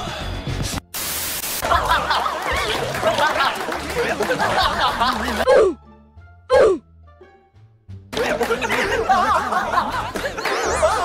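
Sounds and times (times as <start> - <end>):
background music: 0.0 - 11.0
loud static hiss: 0.9 - 1.7.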